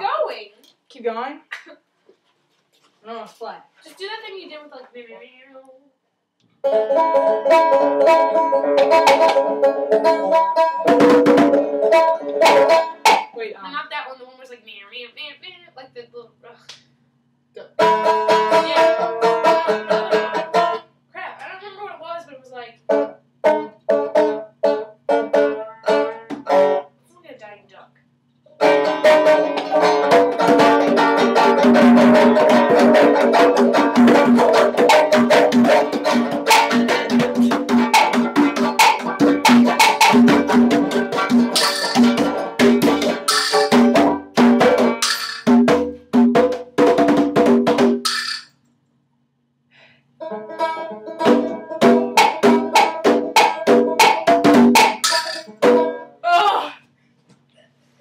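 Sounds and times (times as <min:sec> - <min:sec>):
banjo playing: 0:06.6 - 0:13.4, 0:17.6 - 0:20.9, 0:22.9 - 0:26.9, 0:28.5 - 0:47.9, 0:50.2 - 0:56.2
conga drums hand strokes: 0:07.0 - 0:13.4, 0:28.6 - 0:48.6, 0:50.6 - 0:55.9.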